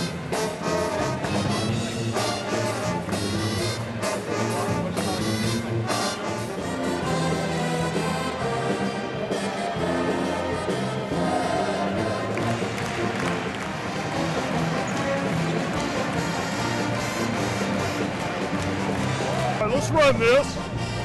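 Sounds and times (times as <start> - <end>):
pep band playing brass tune: 0.0 - 21.0.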